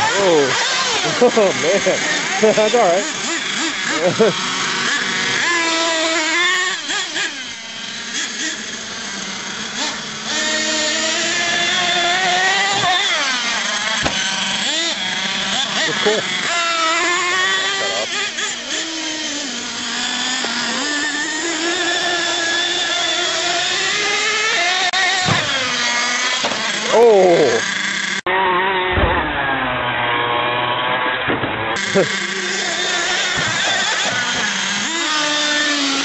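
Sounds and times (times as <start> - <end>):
small nitro engine revving: 0.0 - 36.0.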